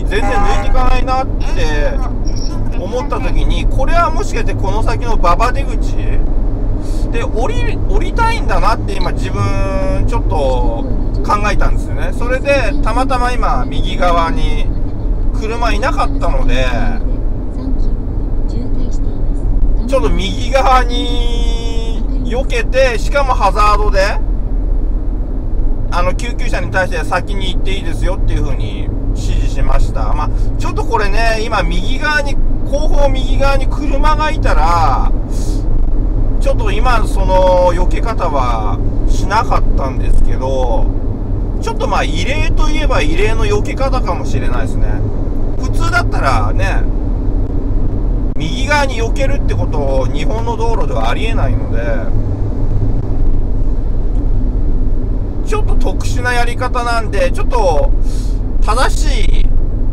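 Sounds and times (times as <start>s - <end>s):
man talking: 0.0s - 6.3s, 6.9s - 14.7s, 15.4s - 17.0s, 19.8s - 24.2s, 25.9s - 35.6s, 36.4s - 40.9s, 41.6s - 46.9s, 48.4s - 52.2s, 55.4s - 59.5s
car road and engine rumble: 0.0s - 59.9s.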